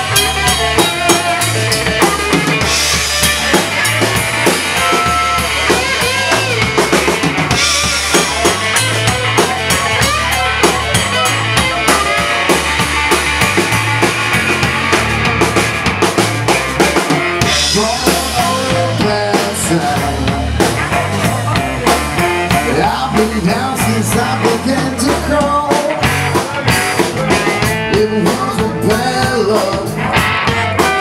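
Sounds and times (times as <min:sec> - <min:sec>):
blues band playing: 0:00.0 - 0:31.0.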